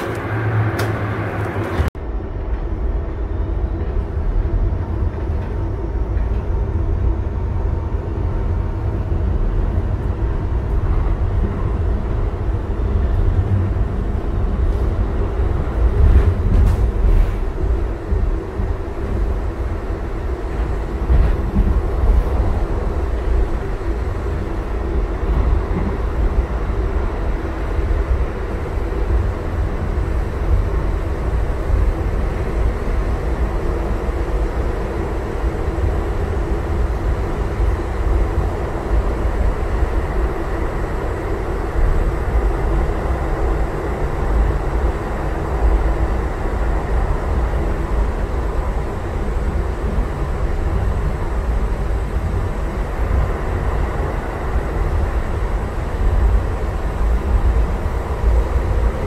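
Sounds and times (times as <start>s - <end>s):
rail car wheels rumbling: 0.0s - 59.0s.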